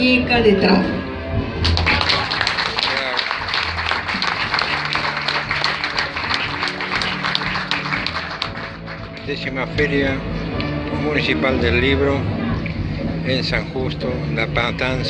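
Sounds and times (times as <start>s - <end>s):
background music: 0.0s - 15.0s
audience applauding: 1.6s - 9.3s.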